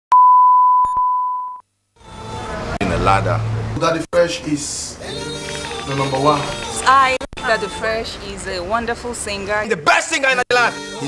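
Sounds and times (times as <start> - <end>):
steady pure test tone beep: 0.1 - 1.6.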